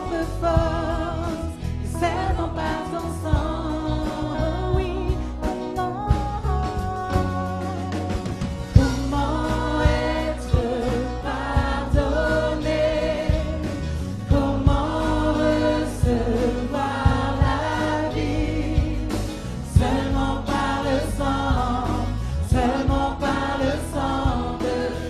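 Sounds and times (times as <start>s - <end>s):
group singing worship song: 0.0s - 5.8s, 6.5s - 25.0s
acoustic guitar: 0.0s - 25.0s
bass guitar: 0.0s - 25.0s
drum kit beat: 0.0s - 25.0s
electric guitar: 0.0s - 25.0s
keyboard: 0.0s - 25.0s.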